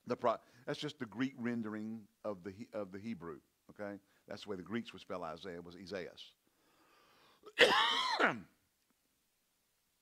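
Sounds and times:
man clearing his throat: 7.5 - 8.5.

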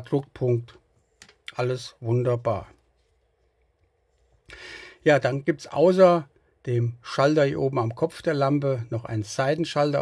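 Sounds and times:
soft intake of breath: 4.5 - 5.0.

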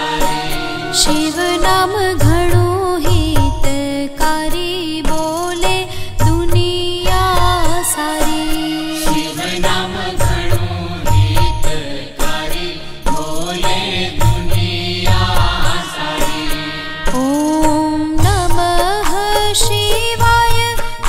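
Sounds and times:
devotional song melody: 0.0 - 21.0
deep drum beat: 1.2 - 3.9, 6.2 - 7.9, 9.7 - 12.4, 14.2 - 15.8.

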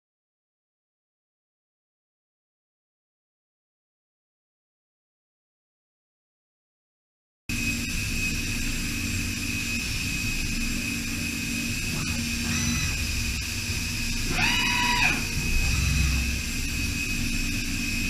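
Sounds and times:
low machine rumble: 7.5 - 18.0
milling machine whine: 7.5 - 18.0.

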